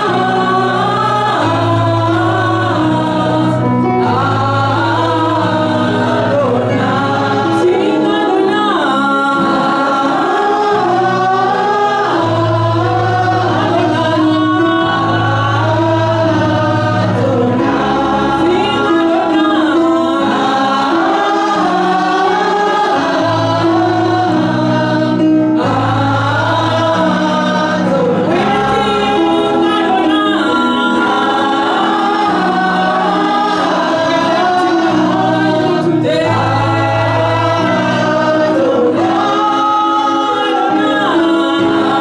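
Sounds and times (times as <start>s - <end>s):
women singing together: 0.0s - 42.0s.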